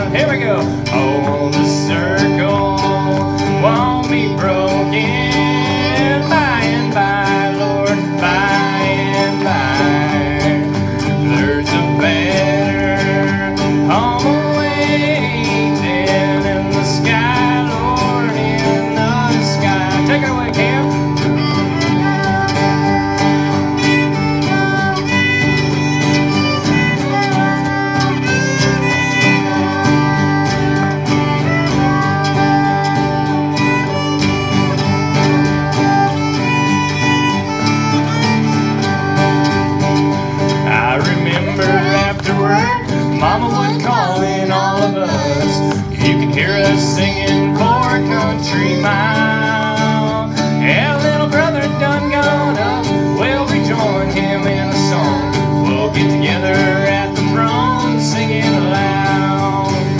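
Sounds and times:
bluegrass band playing: 0:00.0 - 0:59.9
fiddle lead: 0:00.0 - 0:59.9.

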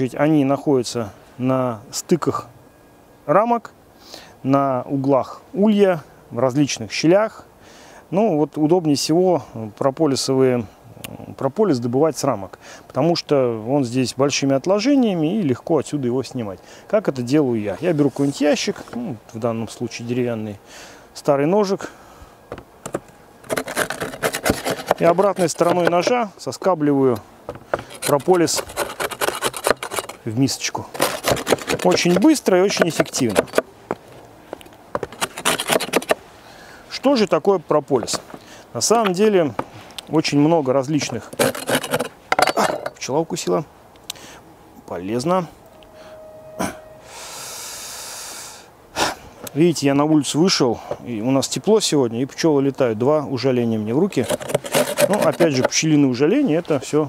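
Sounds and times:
knife scraping wood: 0:22.8 - 0:30.3, 0:30.9 - 0:36.2, 0:41.0 - 0:42.9, 0:54.1 - 0:55.9
person breathing hissing: 0:47.0 - 0:49.3.

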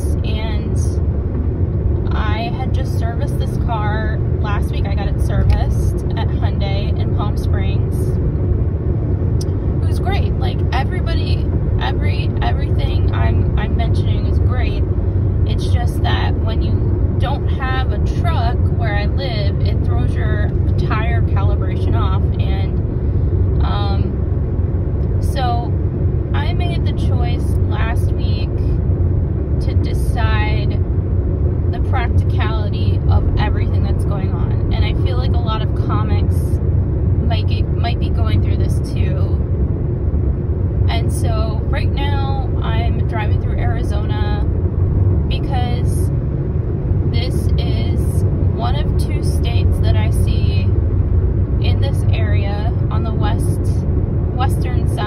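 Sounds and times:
car cabin road rumble: 0:00.0 - 0:55.0
person talking: 0:02.1 - 0:08.1, 0:23.6 - 0:24.2, 0:26.4 - 0:28.6, 0:40.9 - 0:44.5, 0:47.2 - 0:50.7.

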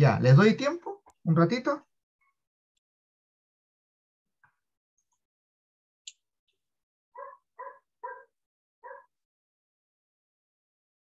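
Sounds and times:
dog barking: 0:07.2 - 0:09.2.

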